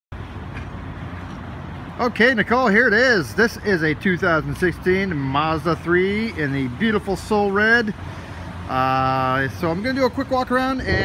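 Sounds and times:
low rumble: 10.8s - 11.0s.

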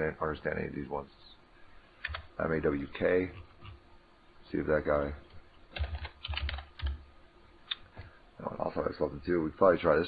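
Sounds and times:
typing on a keyboard: 5.7s - 7.0s.

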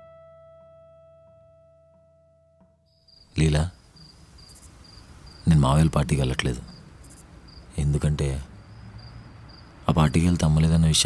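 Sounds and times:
music: 0.0s - 3.0s
crickets chirping: 2.9s - 11.0s
man speaking: 3.4s - 3.8s, 5.4s - 6.7s, 7.7s - 8.5s, 9.9s - 11.0s.

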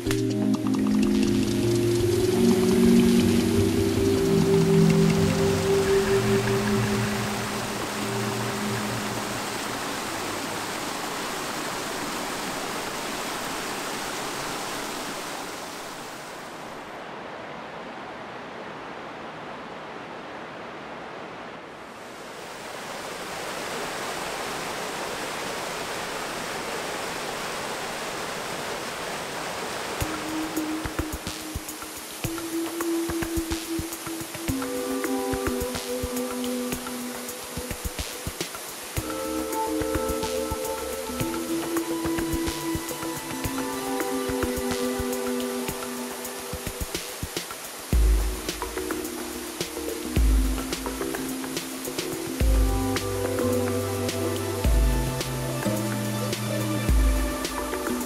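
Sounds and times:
background music with low notes: 0.0s - 10.5s, 30.0s - 58.0s
mountain stream rushing: 0.0s - 58.0s.

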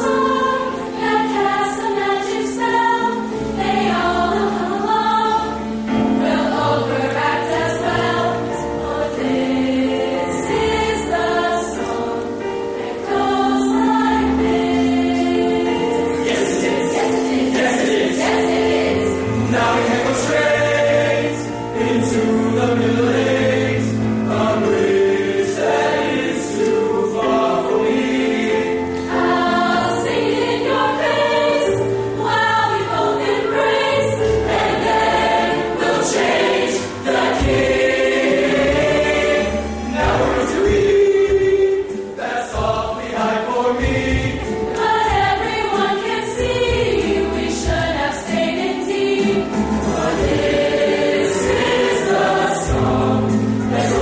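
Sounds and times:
choir singing in harmony: 0.0s - 54.0s.

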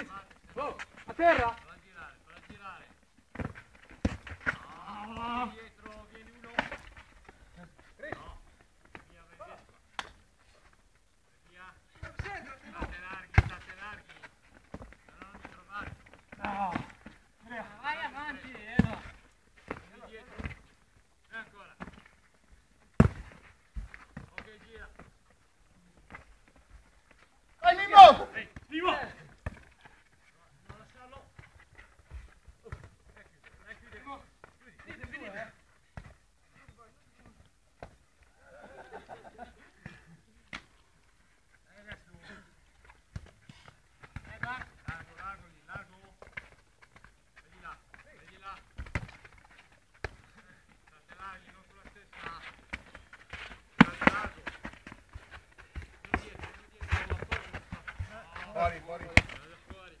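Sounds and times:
football being kicked: 12.0s - 13.8s, 18.7s - 20.7s, 23.0s - 25.0s, 51.8s - 59.7s
players calling out: 27.6s - 29.3s.

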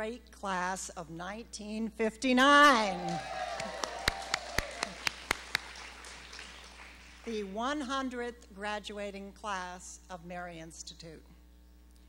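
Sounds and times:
sharp hand claps: 3.1s - 7.2s.

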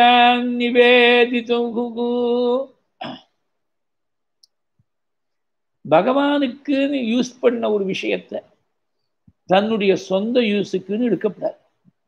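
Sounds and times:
man chanting: 0.0s - 2.8s, 5.8s - 8.4s, 9.5s - 11.6s
throat noise: 3.0s - 3.4s
man speaking: 9.5s - 11.7s.

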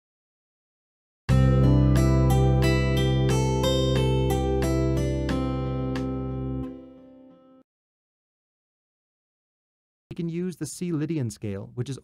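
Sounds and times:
guitar melody: 1.3s - 7.6s
sustained guitar chord: 1.3s - 7.6s.

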